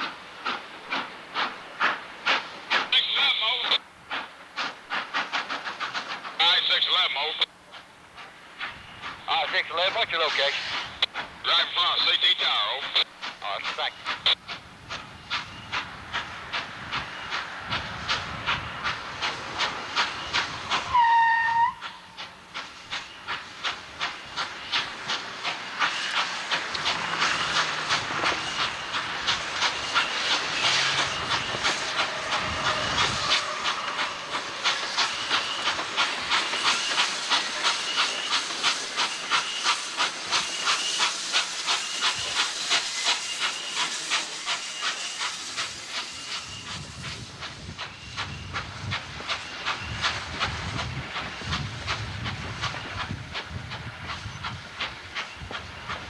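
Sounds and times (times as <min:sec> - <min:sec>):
steam locomotive exhaust chuffs: 0:00.0 - 0:56.0.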